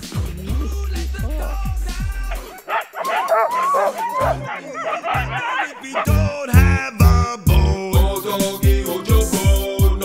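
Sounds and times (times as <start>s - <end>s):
background music: 0.0s - 10.0s
dogs yelping and whining: 2.3s - 6.3s.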